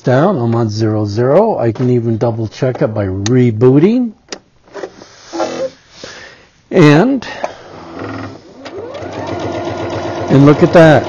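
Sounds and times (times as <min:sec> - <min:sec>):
sewing machine whirring: 0:07.8 - 0:11.0.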